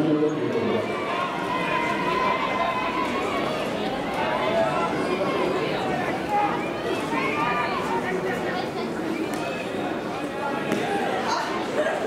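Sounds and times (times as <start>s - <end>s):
overlapping voices talking: 0.0s - 12.0s.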